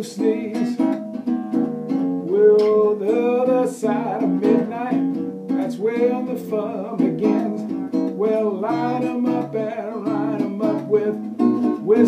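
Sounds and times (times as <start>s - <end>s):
man singing: 0.0s - 1.0s, 2.2s - 12.0s
classical guitar strummed: 0.0s - 12.0s.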